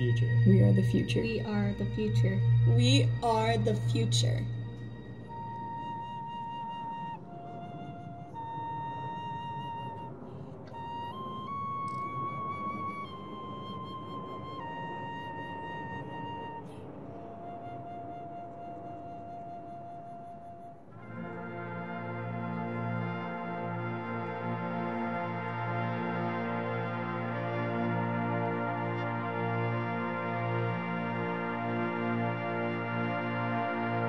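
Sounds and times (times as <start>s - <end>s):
sustained chord: 0.0s - 17.6s, 21.0s - 34.0s
solo flute melody: 0.0s - 34.0s.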